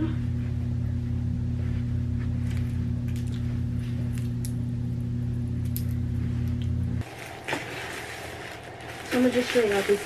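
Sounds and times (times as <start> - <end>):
rustling and handling noise: 1.5 - 4.4, 5.7 - 10.0.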